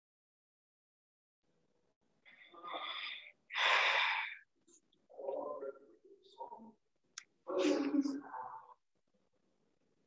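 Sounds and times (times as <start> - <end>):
person breathing out heavily: 2.7 - 4.5.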